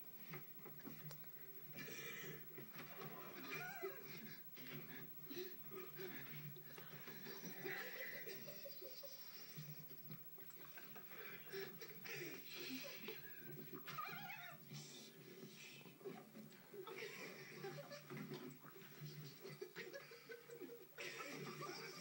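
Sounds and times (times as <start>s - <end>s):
men stifling squeaky laughter: 1.8s - 13.8s, 16.7s - 22.0s.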